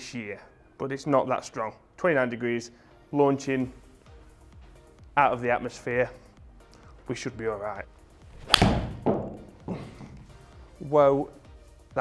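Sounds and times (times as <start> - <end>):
golf club striking ball: 8.3 - 9.5
soft thud: 8.4 - 9.5.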